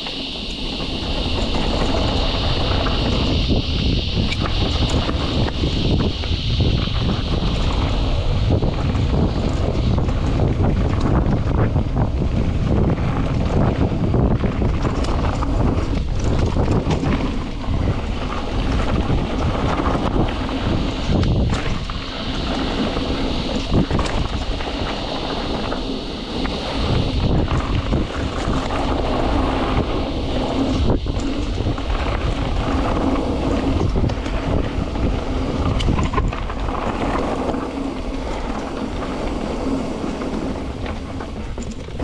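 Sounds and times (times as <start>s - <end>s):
bike rattling and knocking: 0.0s - 42.0s
bike tyres rolling over dirt: 0.0s - 42.0s
wind buffeting microphone: 0.0s - 42.0s.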